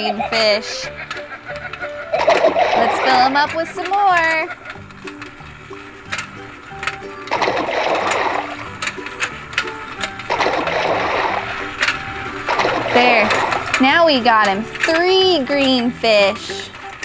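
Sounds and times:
motorized toy whirring: 0:00.4 - 0:17.0
plastic clicks: 0:00.4 - 0:17.0
splashing sound effects: 0:07.3 - 0:08.6, 0:10.3 - 0:11.6, 0:12.5 - 0:13.8.

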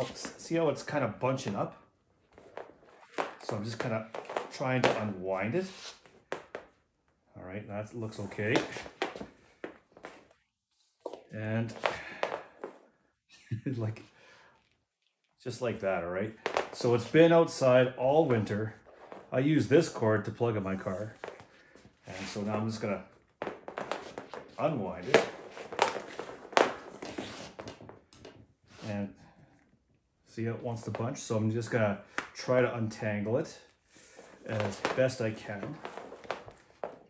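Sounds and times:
cord dragging across floor: 0:02.2 - 0:06.2, 0:16.4 - 0:29.0, 0:33.9 - 0:37.0
rubber cord knocking and rustling: 0:21.2 - 0:28.5.

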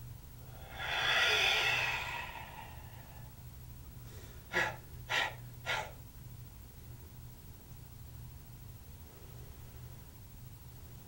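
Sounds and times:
man forcefully exhaling: 0:00.4 - 0:03.3, 0:04.3 - 0:06.0
short sharp breaths: 0:00.4 - 0:03.3, 0:04.0 - 0:06.0.

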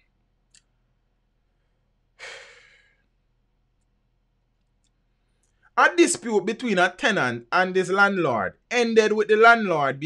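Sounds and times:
man sighing: 0:02.2 - 0:03.0.

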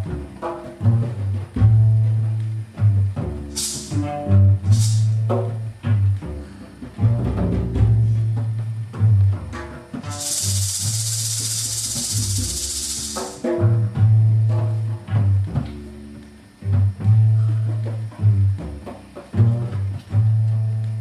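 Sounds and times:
bass repeating low notes: 0:00.0 - 0:21.0
plucked string notes: 0:00.0 - 0:21.0
shaker rattling: 0:03.5 - 0:04.0, 0:04.6 - 0:05.2, 0:10.0 - 0:13.5.

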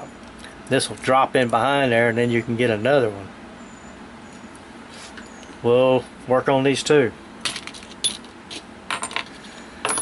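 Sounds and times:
screws clinking on workbench: 0:08.9 - 0:10.0.

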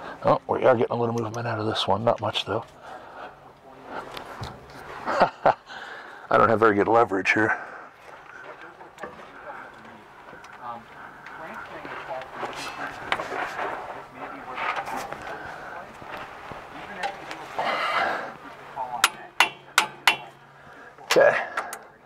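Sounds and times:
muffled talk: 0:06.3 - 0:19.4.

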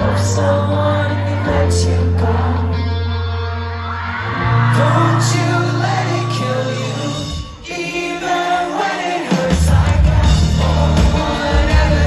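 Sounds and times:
crowd singing and shouting: 0:00.0 - 0:12.0
live pop-rock band playing: 0:00.0 - 0:12.0.

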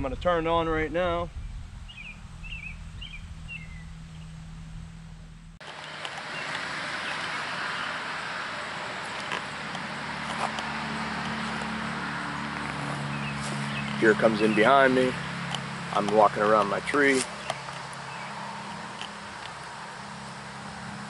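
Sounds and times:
steady outdoor hiss: 0:00.0 - 0:21.0
low hum: 0:01.3 - 0:14.2
bird chirps: 0:01.4 - 0:04.4, 0:12.4 - 0:15.1, 0:17.3 - 0:18.8.

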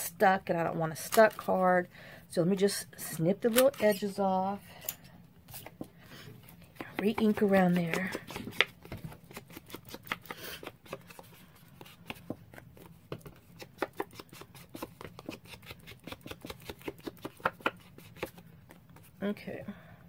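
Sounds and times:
ink blending tool tapping on card: 0:06.8 - 0:09.0.

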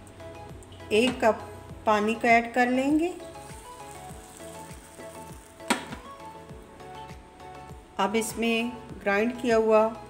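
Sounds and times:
light sizzle: 0:00.0 - 0:09.5
music with a steady beat: 0:03.0 - 0:09.0.

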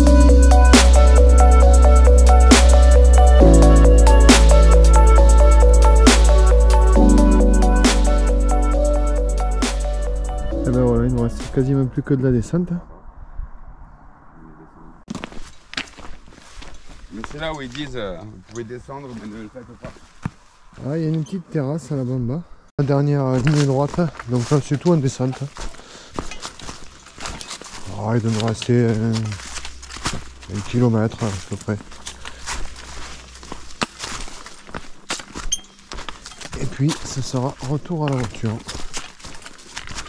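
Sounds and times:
footsteps crunching on stony trail: 0:15.1 - 0:21.3, 0:22.8 - 0:40.0.

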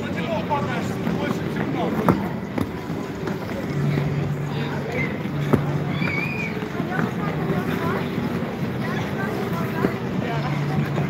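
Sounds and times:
skaters' voices and calls: 0:00.0 - 0:11.0.

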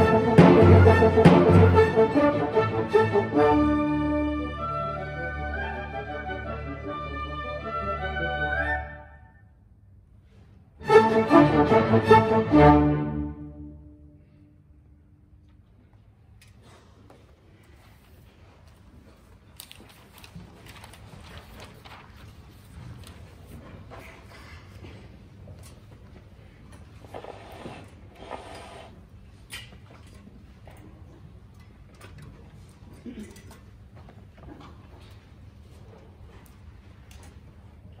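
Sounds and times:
audience rustling and shuffling: 0:09.9 - 0:10.8, 0:14.2 - 0:38.0.

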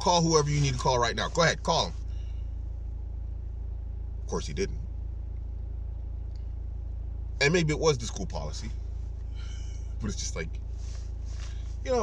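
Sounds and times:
car rumble inside cabin: 0:00.0 - 0:12.0.

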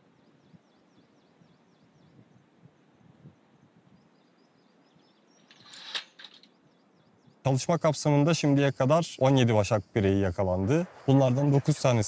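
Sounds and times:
small bird chirping: 0:00.0 - 0:07.6
noisy burst: 0:10.4 - 0:12.0.

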